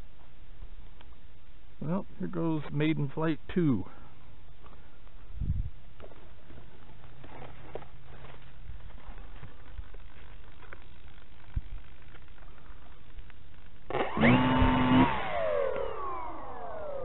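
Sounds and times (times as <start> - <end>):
electric motor whine: 13.9 - 17.0.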